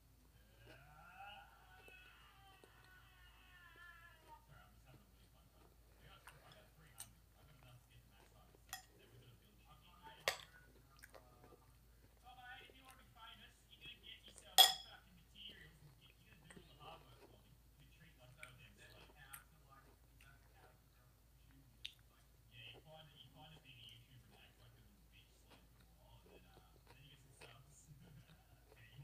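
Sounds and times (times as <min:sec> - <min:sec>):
faint speech: 0:00.4 - 0:29.0.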